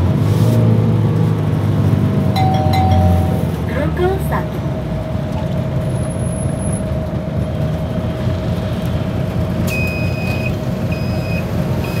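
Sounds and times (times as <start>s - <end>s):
bus engine and road rumble: 0.0s - 12.0s.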